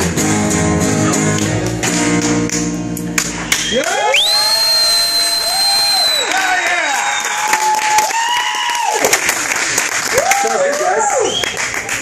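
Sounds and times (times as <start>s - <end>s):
shrill whistle: 3.5s - 7.6s, 11.2s - 11.6s
whooping shouts: 3.7s - 9.1s, 10.1s - 11.4s.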